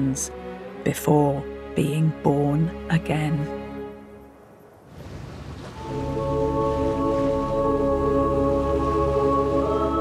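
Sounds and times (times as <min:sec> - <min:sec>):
choppy sea: 0:04.8 - 0:10.0
sustained chords music: 0:05.8 - 0:10.0.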